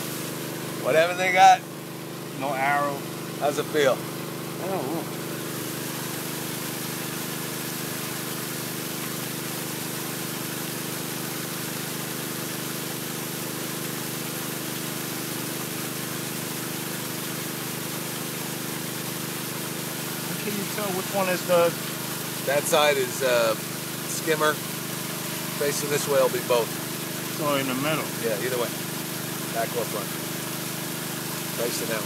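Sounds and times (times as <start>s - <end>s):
pool pump motor hum: 0.0s - 32.0s
water hissing: 4.6s - 32.0s.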